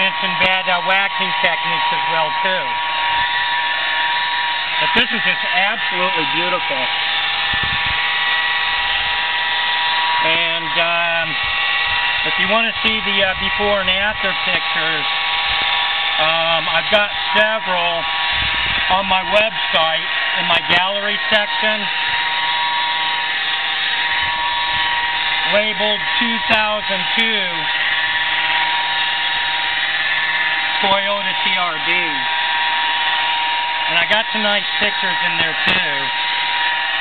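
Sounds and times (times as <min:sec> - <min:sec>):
high-pitched whine: 0:00.0 - 0:37.0.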